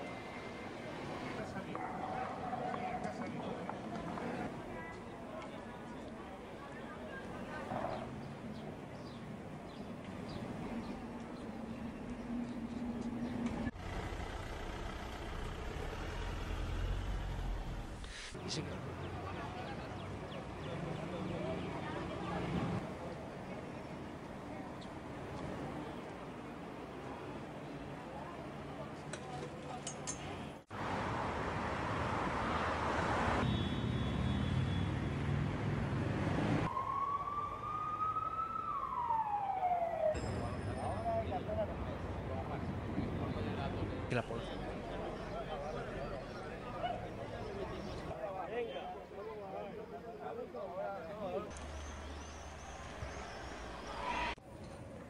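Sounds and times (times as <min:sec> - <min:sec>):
low rumble of vehicle traffic: 0:00.0 - 0:55.0
emergency vehicle siren: 0:36.5 - 0:41.7.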